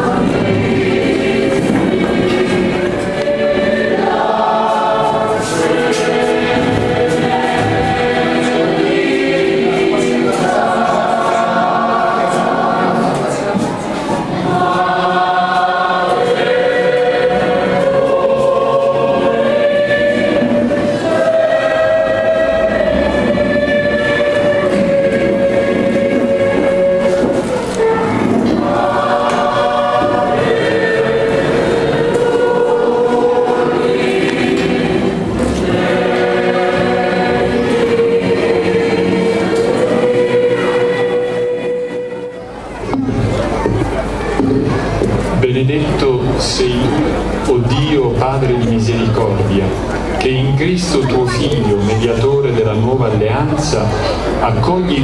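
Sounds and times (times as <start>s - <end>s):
group singing a slow hymn: 0.0s - 53.1s.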